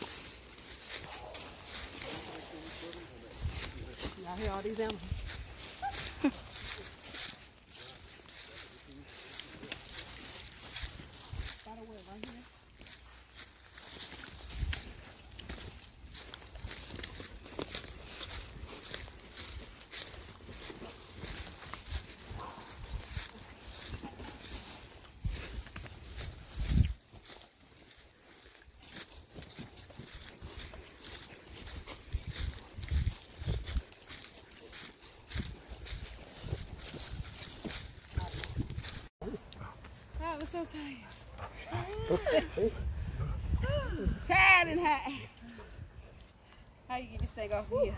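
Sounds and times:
footsteps crunching through leaves: 0.0s - 42.6s
brush rustling: 0.0s - 43.6s.

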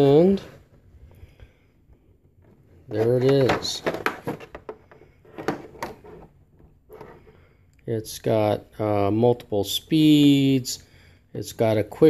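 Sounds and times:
plastic case clicks and knocks: 3.2s - 6.0s.

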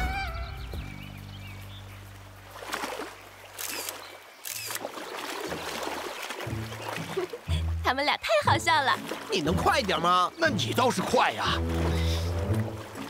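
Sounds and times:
camera shutter clicks: 3.6s - 4.8s
soft background music: 6.4s - 13.0s.

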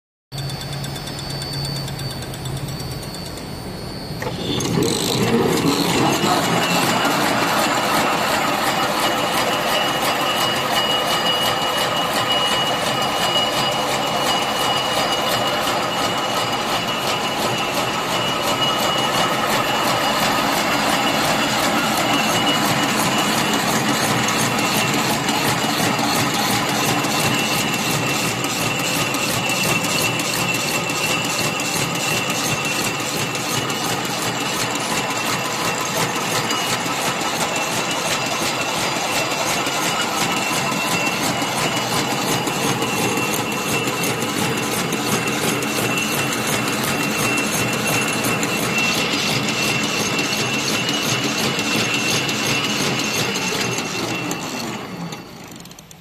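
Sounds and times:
machine high whine: 0.4s - 56.0s
machine clattering rhythmically: 4.2s - 55.4s.

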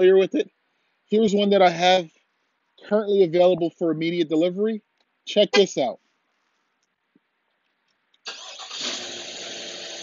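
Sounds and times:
car engine starting and idling: 8.3s - 10.0s.

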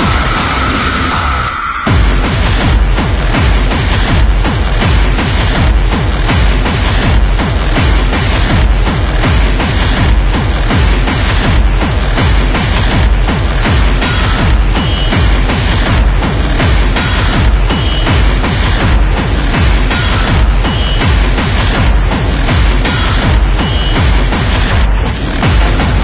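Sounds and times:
distorted kick drum: 0.0s - 26.0s
hardcore techno track: 0.0s - 26.0s.

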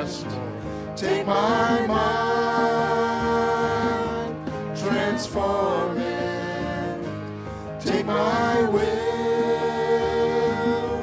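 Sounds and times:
voices singing together: 0.0s - 11.0s.

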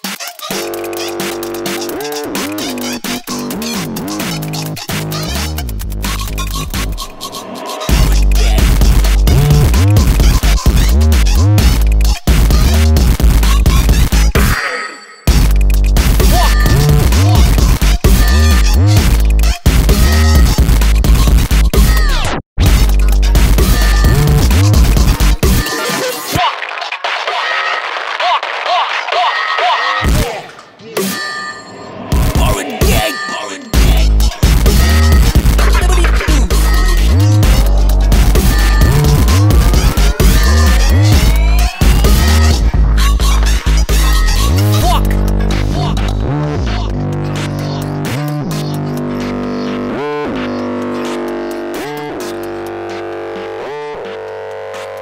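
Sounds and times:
electronic bass music: 0.5s - 14.4s, 15.3s - 21.9s, 22.6s - 25.8s, 33.7s - 55.0s
swooping synth chord: 33.7s - 43.4s
heavy bass hit: 33.8s - 45.3s.

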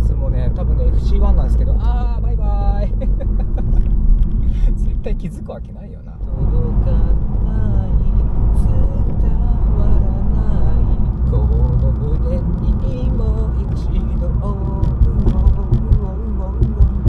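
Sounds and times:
road and engine rumble in car: 0.0s - 17.0s
person singing: 6.3s - 17.0s.

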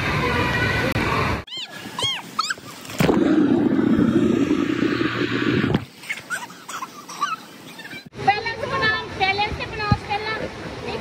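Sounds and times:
high squeaky calls: 1.5s - 2.8s
underwater rush of water and bubbles: 2.6s - 6.1s.

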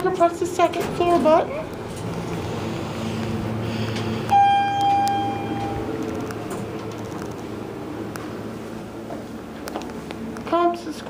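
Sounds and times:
low steady hum: 0.0s - 11.0s
elevator chime ding: 4.3s - 6.0s.

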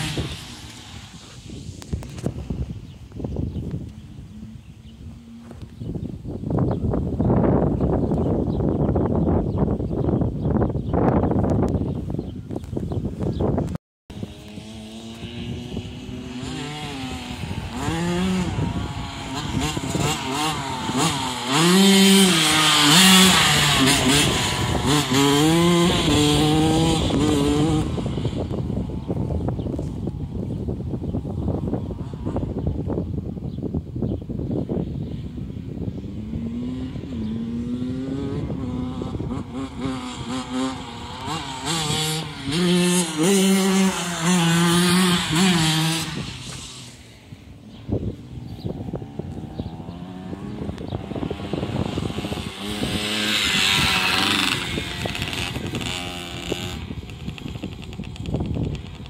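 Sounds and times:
dirt bike engine revving: 0.0s - 2.6s, 14.1s - 30.6s, 35.4s - 59.0s.

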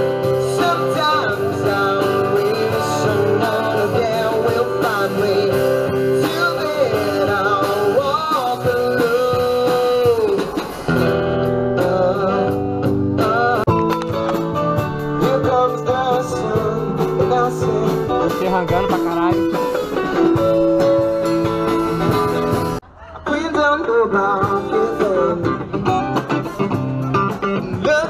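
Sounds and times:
person singing: 0.0s - 13.8s, 14.8s - 28.0s
band with guitars and drums: 0.0s - 28.0s.

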